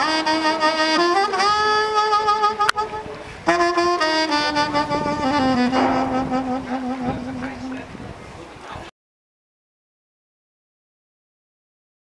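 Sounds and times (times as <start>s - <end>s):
saxophone holding low note: 0.0s - 8.0s.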